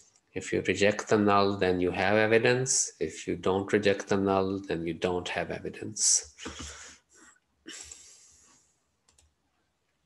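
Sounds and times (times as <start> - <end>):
faint computer mouse clicks: 9.1 - 9.4.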